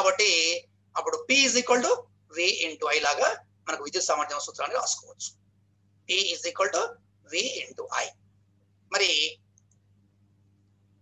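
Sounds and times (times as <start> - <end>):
low electrical hum: 0.0 - 11.0
faint click: 9.5 - 9.9.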